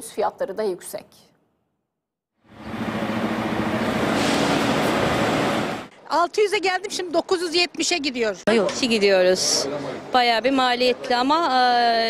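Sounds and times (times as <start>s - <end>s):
coach engines running: 2.5s - 5.9s.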